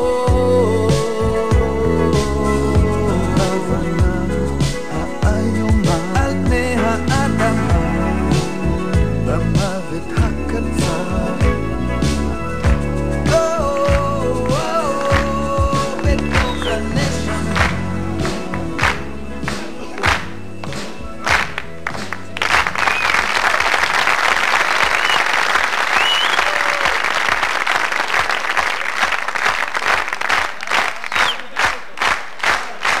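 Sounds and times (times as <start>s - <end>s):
rock band playing: 0.0s - 23.1s
rhythmic clapping: 2.2s - 33.0s
whistles: 16.2s - 17.0s, 22.8s - 23.5s, 24.8s - 27.0s, 31.0s - 31.5s
audience applause: 17.5s - 33.0s.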